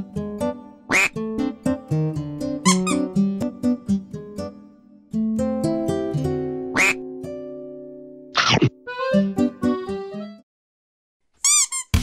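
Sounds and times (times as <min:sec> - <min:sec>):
plucked strings music: 0:00.0 - 0:10.4.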